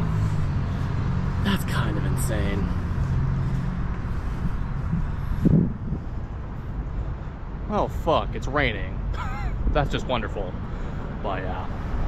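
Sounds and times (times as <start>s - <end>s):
road and wind noise: 0.0s - 12.0s
vehicle engine hum: 0.0s - 12.0s.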